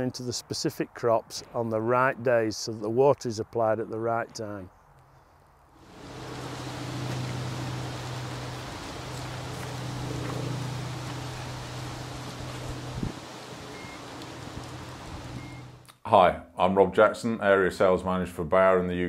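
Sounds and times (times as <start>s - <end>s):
diesel pump engine running: 5.9s - 15.8s.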